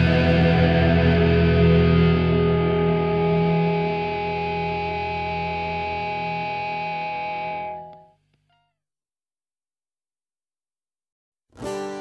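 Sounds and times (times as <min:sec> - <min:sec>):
distorted electric guitar chord: 0:00.0 - 0:08.1.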